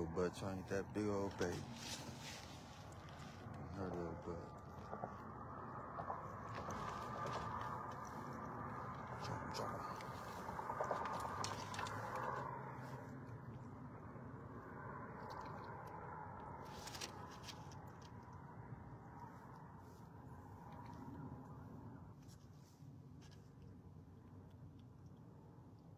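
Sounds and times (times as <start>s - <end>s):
handling rustling with small clicks: 1.3s - 3.8s, 6.0s - 13.6s, 15.1s - 18.4s, 22.2s - 25.9s.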